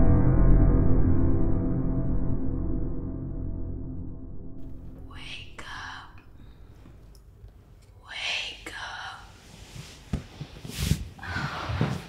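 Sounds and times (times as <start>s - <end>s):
breathy whisper: 5.0s - 7.1s, 7.9s - 10.0s.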